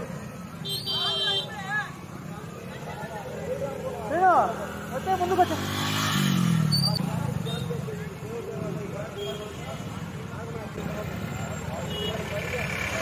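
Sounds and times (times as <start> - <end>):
vehicle engine passing: 3.6 - 9.0.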